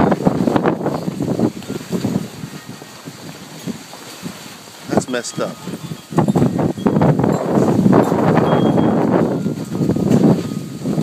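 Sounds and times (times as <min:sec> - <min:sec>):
fabric canopy flapping: 0:00.0 - 0:11.0
wind rumble on microphone: 0:00.0 - 0:11.0.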